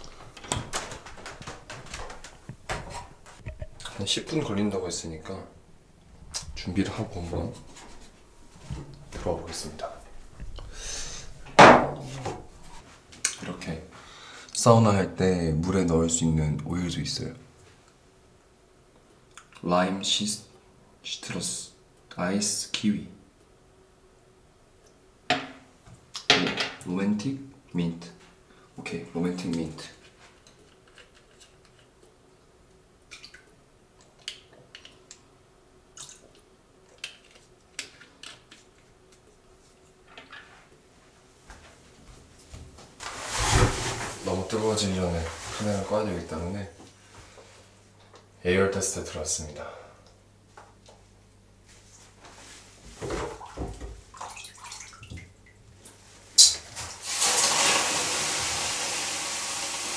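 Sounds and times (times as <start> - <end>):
man speaking: 3.8 - 5.6, 6.6 - 7.6, 9.2 - 10.0, 14.6 - 17.4, 44.2 - 46.8, 48.4 - 49.8
water splashing in a bucket: 53.2 - 55.4, 56.8 - 58.9.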